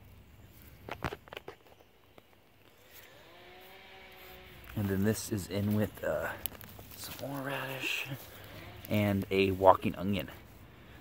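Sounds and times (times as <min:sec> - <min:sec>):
hands rustling radish leaves: 0:00.0 - 0:11.0
sharp crackles: 0:00.0 - 0:11.0.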